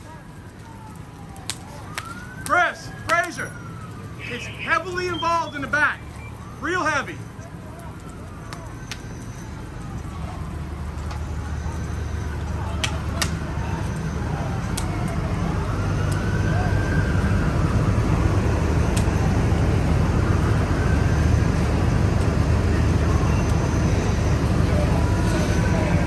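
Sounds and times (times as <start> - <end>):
distant siren wailing: 0.0 - 26.0
fire engine droning: 0.0 - 26.0.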